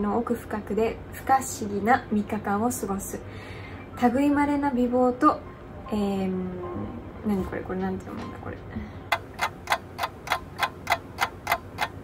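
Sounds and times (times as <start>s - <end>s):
clock ticking: 9.1s - 12.0s.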